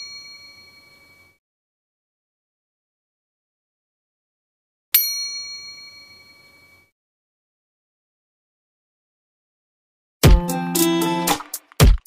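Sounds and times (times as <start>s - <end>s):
bright bell ding: 0.0s - 1.3s, 5.0s - 6.9s.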